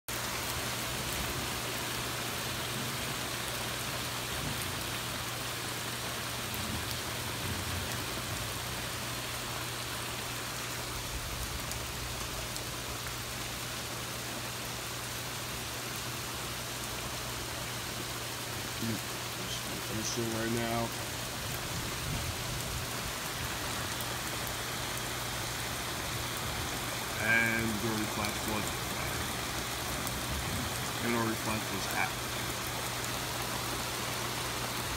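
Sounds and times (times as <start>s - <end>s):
heavy rain on wooden deck: 0.1s - 34.9s.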